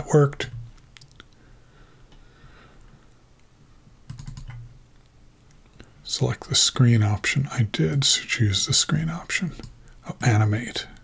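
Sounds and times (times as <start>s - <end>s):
computer keyboard keys clicking: 4.1s - 4.6s.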